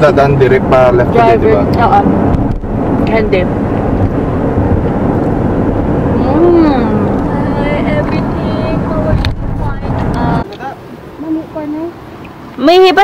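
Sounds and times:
car cabin road and engine noise: 0.0 - 13.0
voices: 6.1 - 13.0.

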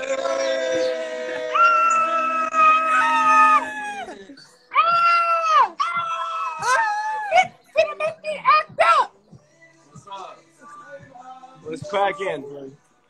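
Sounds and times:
young men yelling: 0.0 - 9.2.

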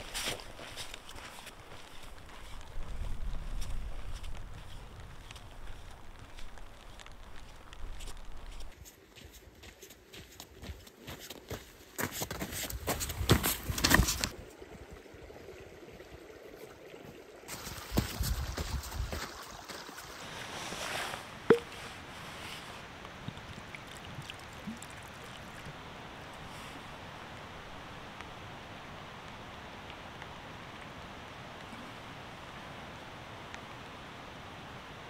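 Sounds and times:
trekking poles clicking on stones: 12.2 - 14.3.

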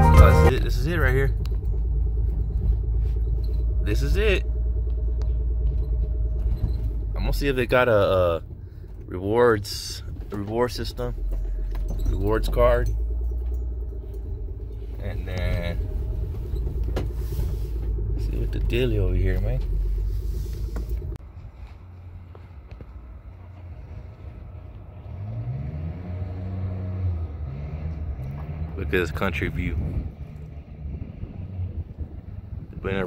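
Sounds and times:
music: 0.0 - 0.5
car cabin rumble: 0.0 - 24.9.

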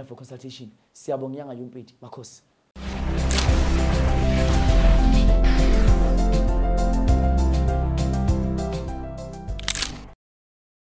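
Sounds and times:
sharp burst of noise: 2.8 - 6.6
music with low pulse: 2.8 - 9.2.

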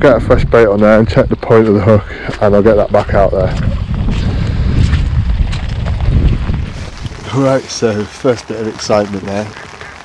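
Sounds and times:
wind buffeting microphone: 0.0 - 10.0
heavy rain: 4.3 - 10.0.

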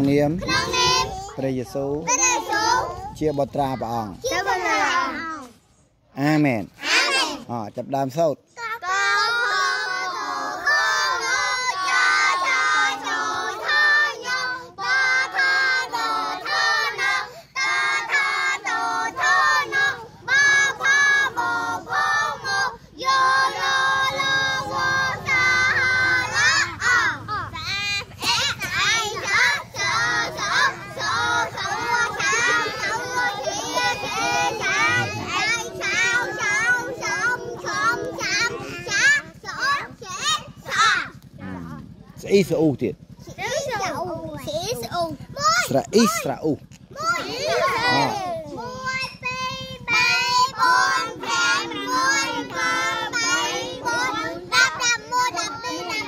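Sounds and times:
children singing: 8.8 - 39.9, 49.4 - 56.0.

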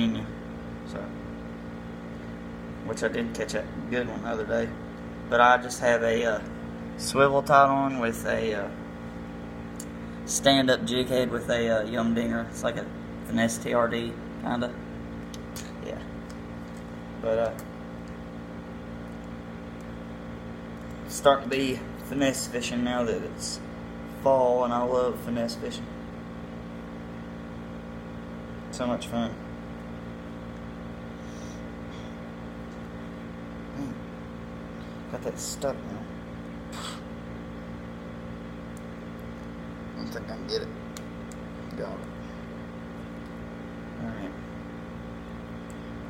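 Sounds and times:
humidifier humming: 0.0 - 46.0.

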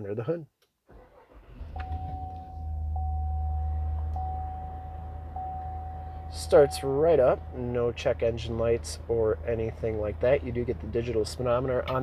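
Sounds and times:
car engine starting and idling: 0.9 - 12.0
thin electronic dashboard tone: 1.2 - 8.6.

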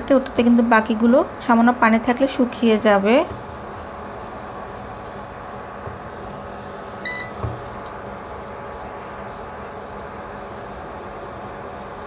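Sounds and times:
electrical hum with faint whine: 0.0 - 12.0
cooktop electronic beep: 7.0 - 7.4.

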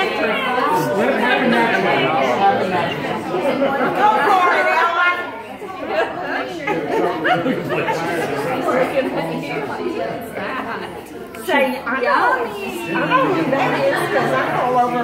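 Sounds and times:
overlapping chatter: 0.0 - 15.0.

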